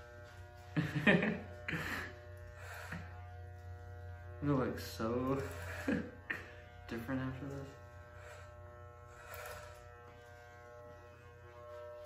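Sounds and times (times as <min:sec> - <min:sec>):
electric hair clippers buzzing: 0:00.0 - 0:12.0.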